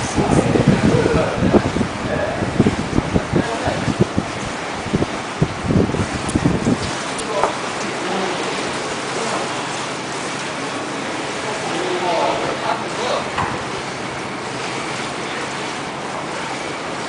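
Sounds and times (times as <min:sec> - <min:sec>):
wind buffeting microphone: 0:00.0 - 0:11.6.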